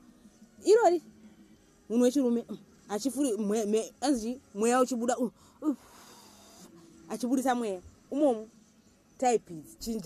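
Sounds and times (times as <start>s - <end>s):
woman speaking: 0.6s - 1.1s, 1.9s - 5.8s, 7.1s - 8.5s, 9.2s - 10.0s
faint breathy wheeze: 5.3s - 6.9s.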